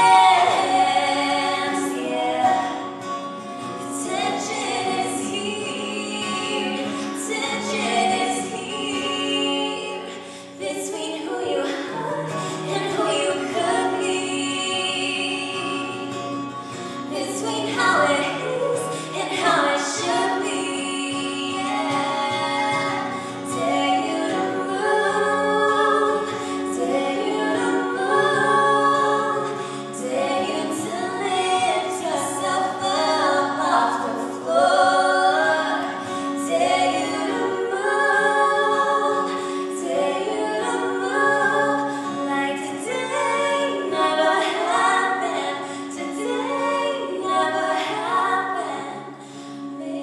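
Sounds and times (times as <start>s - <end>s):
strummed acoustic guitar: 0.0s - 50.0s
women singing in harmony: 0.0s - 50.0s.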